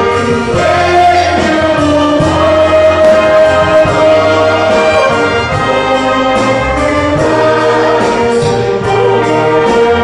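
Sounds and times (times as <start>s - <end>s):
wind band playing slow piece: 0.0s - 10.0s.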